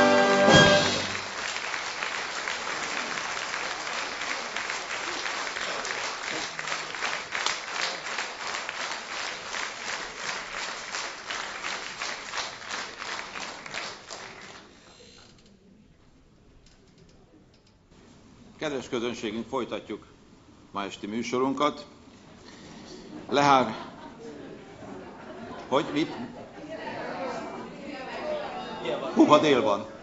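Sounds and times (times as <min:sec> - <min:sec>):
audience applauding: 0:00.0 - 0:14.8.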